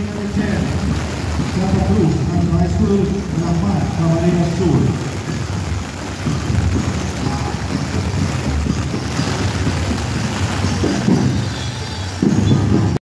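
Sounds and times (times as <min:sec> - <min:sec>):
heavy rain falling: 0:00.0 - 0:13.0
wind rumbling on microphone: 0:00.0 - 0:13.0.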